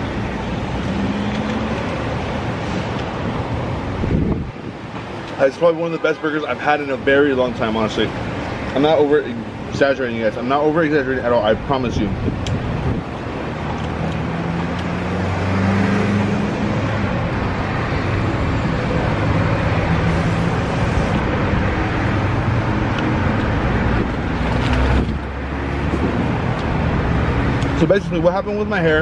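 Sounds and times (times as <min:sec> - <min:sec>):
traffic noise: 0:00.0 - 0:29.0.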